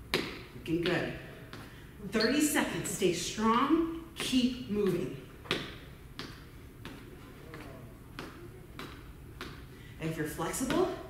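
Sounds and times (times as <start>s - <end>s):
feet tapping on floor: 0.0s - 1.8s, 3.4s - 9.8s.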